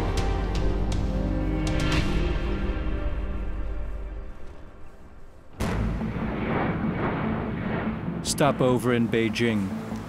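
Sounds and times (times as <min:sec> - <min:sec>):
heavy boom: 0:05.5 - 0:08.6.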